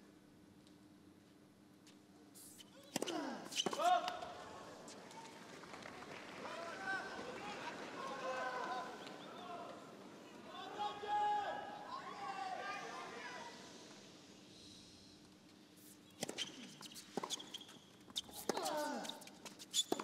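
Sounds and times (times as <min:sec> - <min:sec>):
racket hitting tennis ball: 0:02.9 - 0:04.2, 0:18.2 - 0:19.2.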